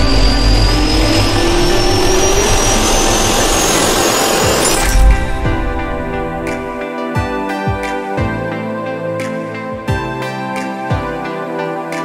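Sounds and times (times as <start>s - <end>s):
sudden hit: 0.0s - 6.8s
jet engine spooling up: 0.0s - 7.0s
intro music: 0.0s - 12.0s.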